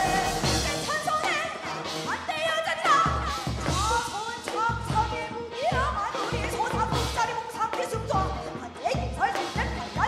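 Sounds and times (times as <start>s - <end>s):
live band music: 0.0s - 10.0s
woman singing into microphone: 0.0s - 10.0s.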